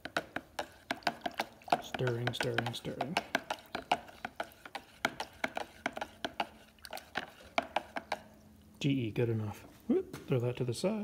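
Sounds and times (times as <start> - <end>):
metal stake clicking against plastic pitcher: 0.0 - 4.0.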